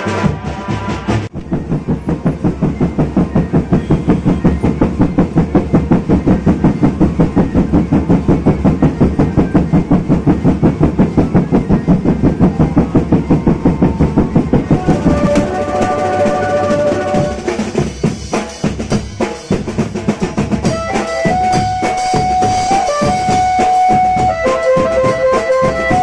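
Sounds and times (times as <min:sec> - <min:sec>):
drums beating a fast rhythm: 0:00.0 - 0:26.0.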